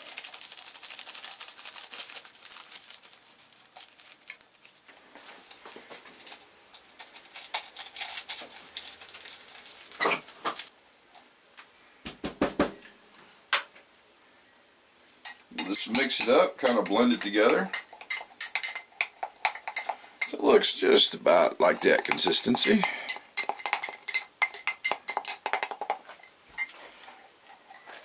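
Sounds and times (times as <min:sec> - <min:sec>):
paper packets tearing and crinkling: 0:00.0 - 0:10.7.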